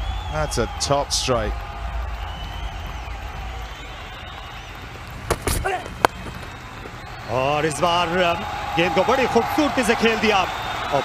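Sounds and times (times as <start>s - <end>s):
stadium ambience rumble: 0.0s - 11.0s
cricket bat striking ball: 5.2s - 7.0s.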